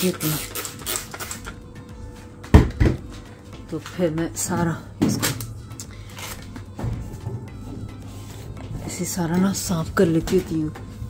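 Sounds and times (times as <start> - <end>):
spray bottle squirting: 0.0 - 1.6.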